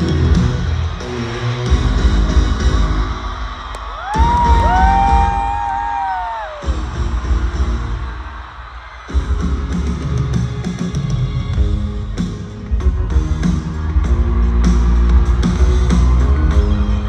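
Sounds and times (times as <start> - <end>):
long whoops: 3.7 - 6.8.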